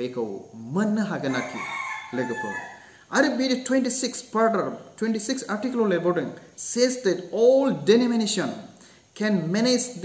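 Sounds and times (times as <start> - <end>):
man speaking: 0.0 - 10.0
rooster crowing: 1.2 - 3.0.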